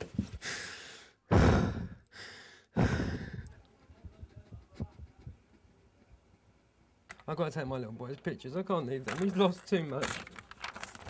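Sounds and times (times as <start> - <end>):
woman breathing heavily: 0.2 - 4.1.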